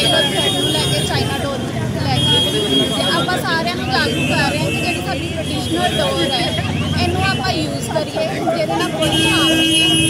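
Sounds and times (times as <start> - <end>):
woman speaking into microphones: 0.0 - 9.8
street and vehicle noise: 0.0 - 10.0.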